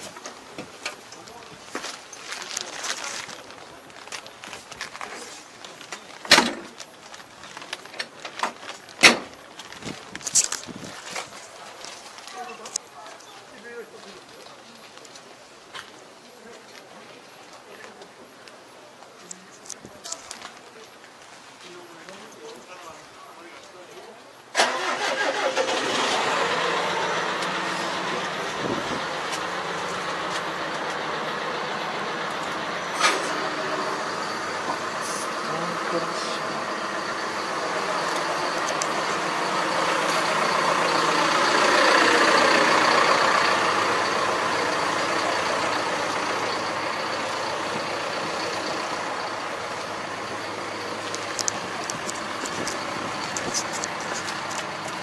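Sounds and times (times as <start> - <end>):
engine running: 24.6 - 55.0.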